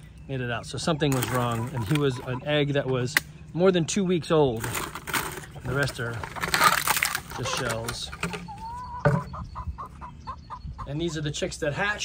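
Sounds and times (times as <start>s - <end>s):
hens clucking: 0.3s - 12.0s.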